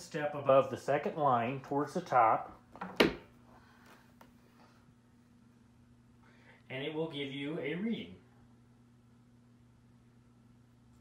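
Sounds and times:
faint steady hum: 0.0s - 11.0s
bare foot thumping on scale: 2.7s - 3.3s.

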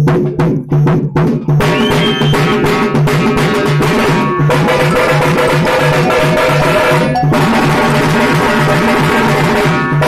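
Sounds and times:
frame drums and bass drum beating: 0.0s - 10.0s.

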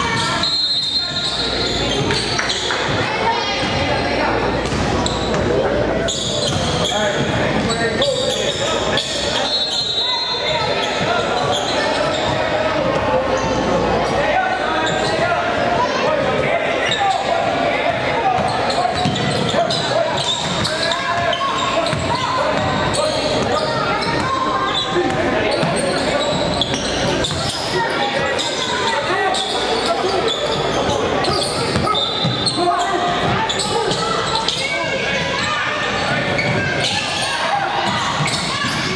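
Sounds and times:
indistinct shouting and chatter: 0.0s - 38.9s.

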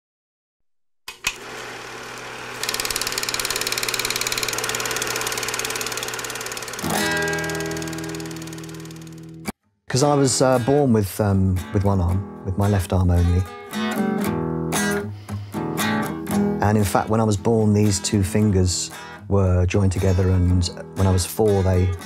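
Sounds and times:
guitar music: 4.2s - 22.0s.

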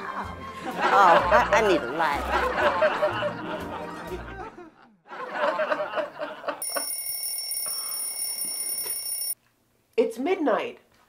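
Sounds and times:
alarm clock ringing: 6.6s - 9.4s.

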